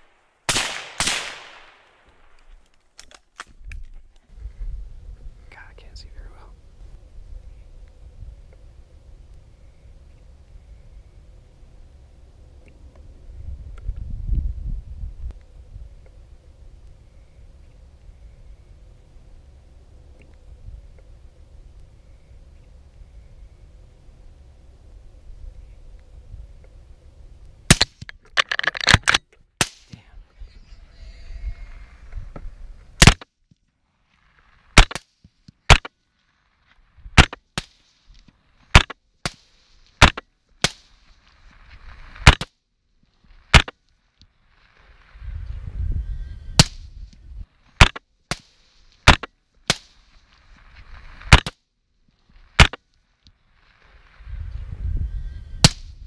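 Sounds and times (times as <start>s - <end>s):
rifle shots: 0.0s - 2.0s, 33.0s - 33.2s.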